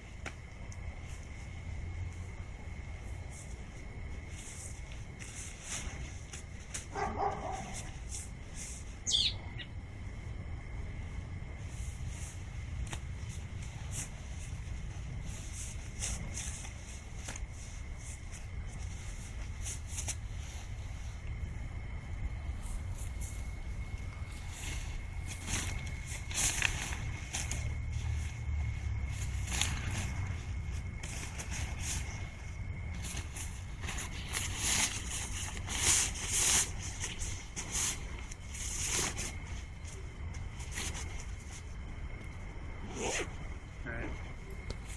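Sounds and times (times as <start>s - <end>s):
tent fabric rustling and flapping: 0.0s - 9.1s, 11.1s - 43.5s.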